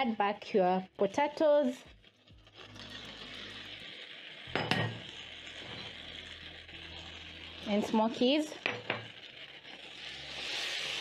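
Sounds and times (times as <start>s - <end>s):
sauce sizzling in a frying pan: 0.0s - 11.0s.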